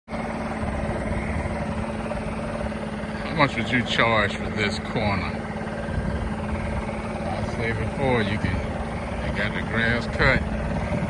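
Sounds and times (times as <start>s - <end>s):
small lawn equipment engine running: 0.1s - 11.0s.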